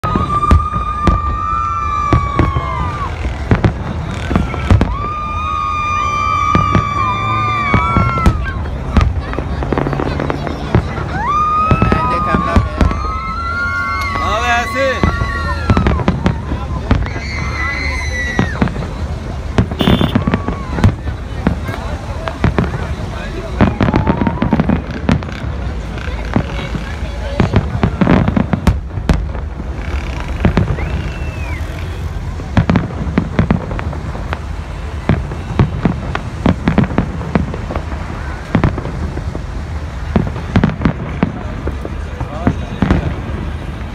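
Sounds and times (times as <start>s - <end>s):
crowd calling out: 0.0s - 25.2s
fireworks bangs and crackling: 0.0s - 43.9s.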